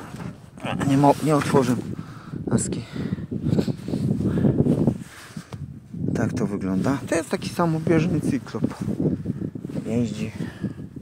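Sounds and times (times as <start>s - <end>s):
low rustling and crackling: 0.0s - 11.0s.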